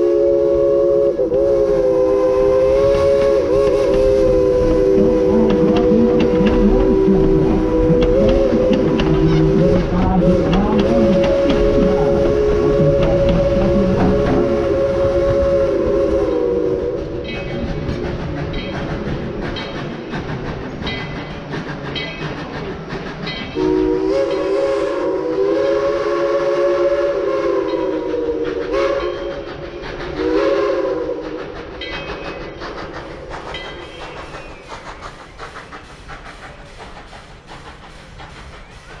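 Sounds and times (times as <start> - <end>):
steam whistle blasts: 0.0 - 17.3, 23.6 - 29.4, 30.2 - 31.5
train wheels clicking over rail joints: 0.0 - 39.0.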